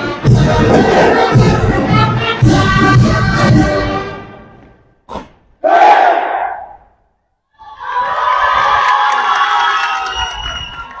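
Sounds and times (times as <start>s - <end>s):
crowd shouting: 5.6s - 6.8s
crowd cheering: 7.6s - 11.0s.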